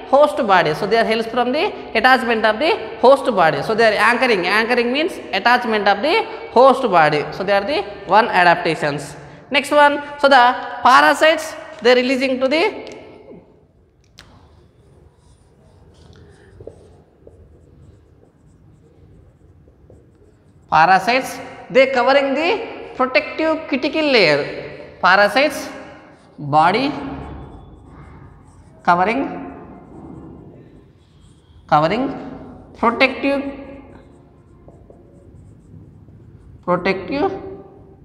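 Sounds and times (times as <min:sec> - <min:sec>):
marker pen on whiteboard: 0:00.0 - 0:38.0.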